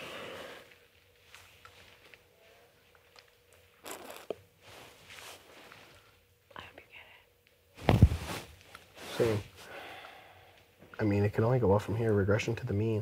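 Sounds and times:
faint steady hum: 0:00.0 - 0:13.0
soft rustling: 0:04.6 - 0:06.2, 0:07.8 - 0:09.7.

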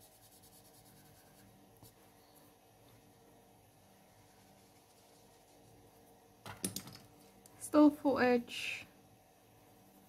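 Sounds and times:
woman speaking: 0:07.6 - 0:08.9.

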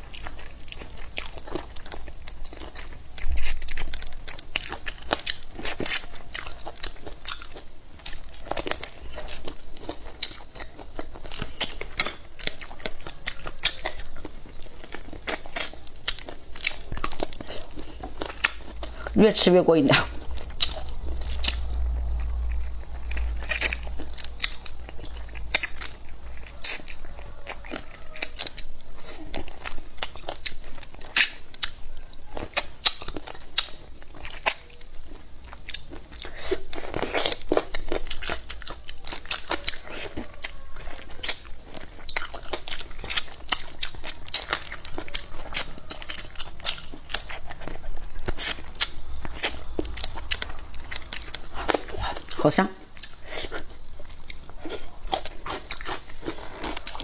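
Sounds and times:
crunchy chewing: 0:00.0 - 0:57.0.

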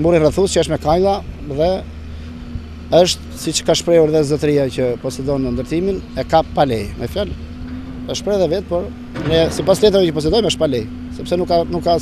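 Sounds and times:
idling engine hum: 0:00.0 - 0:12.0
man speaking: 0:02.9 - 0:07.4, 0:08.1 - 0:12.0.

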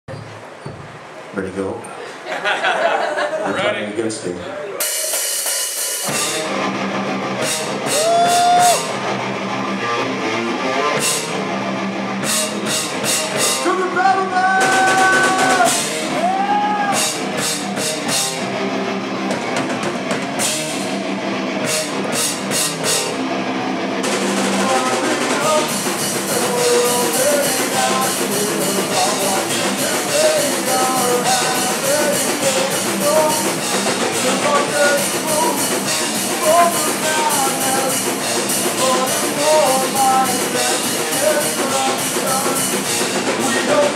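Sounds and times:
cymbals washing: 0:04.8 - 0:06.6, 0:24.0 - 0:43.9
distorted electric guitar: 0:04.8 - 0:43.9
pounding drum kit: 0:04.8 - 0:43.9
bass guitar: 0:06.0 - 0:43.9
vocalist shouting: 0:13.7 - 0:17.0.

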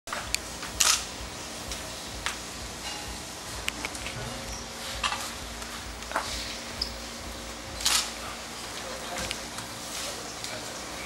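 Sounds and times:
camera shutter clicks: 0:00.8 - 0:01.1, 0:07.8 - 0:08.2.

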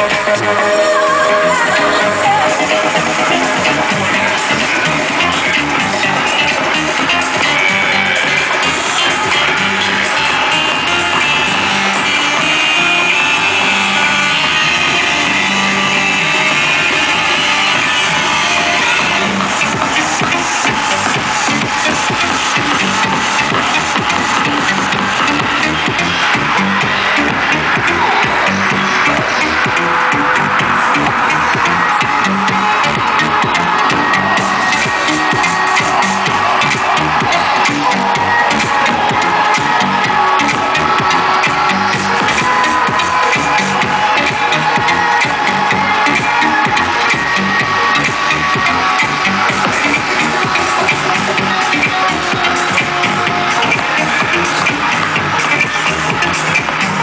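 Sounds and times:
electronic dance music: 0:00.0 - 0:57.0.

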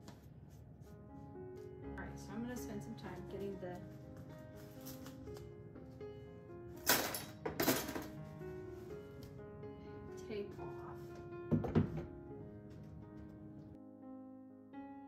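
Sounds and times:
soft piano music: 0:00.0 - 0:15.0.

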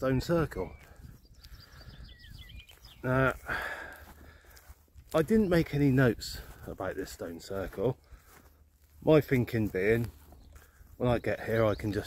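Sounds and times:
small bird chirping: 0:00.0 - 0:03.4.

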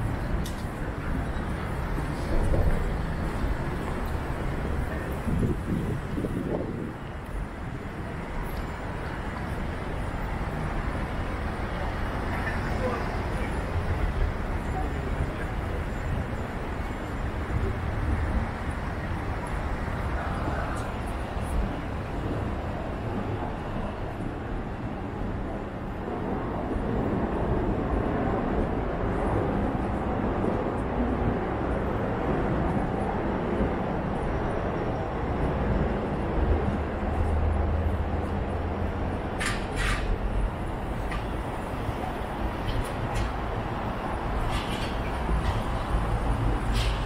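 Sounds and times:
traffic rumble: 0:00.0 - 0:47.0.

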